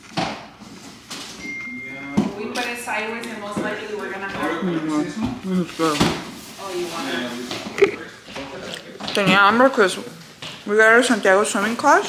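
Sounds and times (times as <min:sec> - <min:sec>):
people talking in background: 0:01.8 - 0:12.0.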